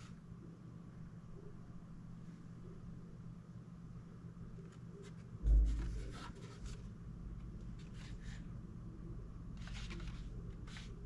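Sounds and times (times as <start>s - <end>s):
dull bump of metal casing: 5.4s - 6.8s.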